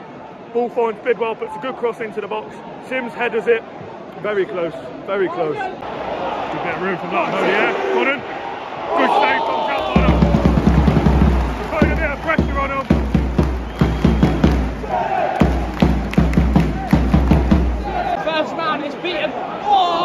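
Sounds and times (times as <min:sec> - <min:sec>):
rhythmic claps: 0:09.8 - 0:18.1.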